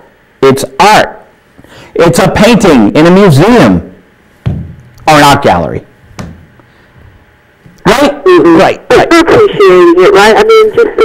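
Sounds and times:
low background hiss: 0.0s - 11.0s
man talking: 5.0s - 5.9s.

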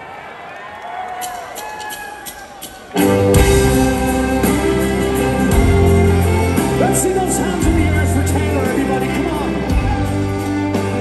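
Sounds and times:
audience noise: 0.0s - 11.0s
live punk band playing: 1.6s - 11.0s
sustained guitar chords: 3.0s - 11.0s.

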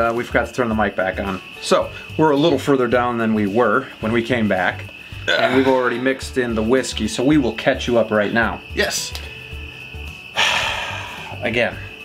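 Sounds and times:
crickets chirring: 0.0s - 12.0s
man exhaling cigar smoke: 10.4s - 11.4s.

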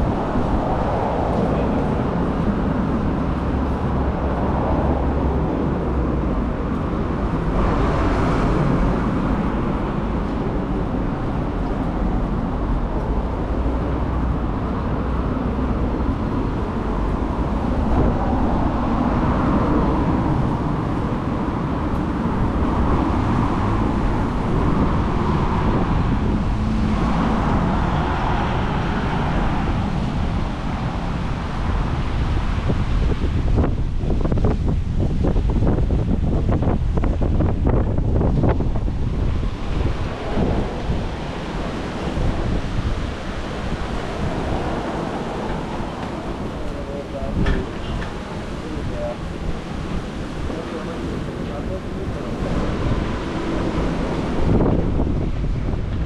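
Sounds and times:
road traffic passing: 0.0s - 56.0s
wind buffeting microphone: 0.0s - 56.0s.

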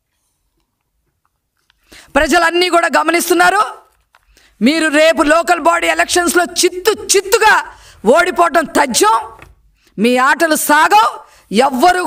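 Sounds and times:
woman speaking into microphone: 2.1s - 3.9s, 4.6s - 12.0s.

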